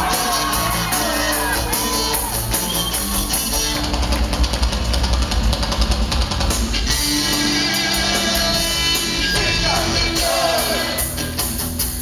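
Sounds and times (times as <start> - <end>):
fast drum kit: 0.0 - 12.0.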